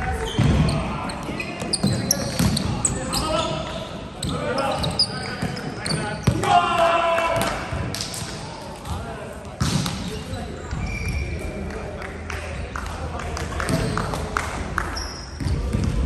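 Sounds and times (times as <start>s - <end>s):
shoe squeaks on hardwood floor: 0.2s - 6.3s, 10.1s - 11.4s, 15.0s - 15.6s
loud shout: 6.3s - 7.7s.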